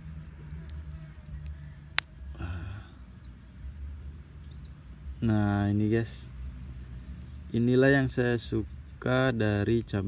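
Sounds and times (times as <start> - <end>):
chili pepper snapping: 0.1 - 2.2.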